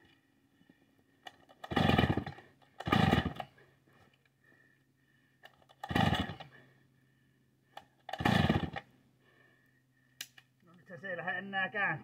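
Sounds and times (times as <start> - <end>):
chainsaw starter cord pulls: 1.2 - 3.6, 5.4 - 6.5, 7.8 - 8.9
chainsaw engine turning over: 1.3 - 3.6, 5.5 - 6.5, 8.0 - 8.9.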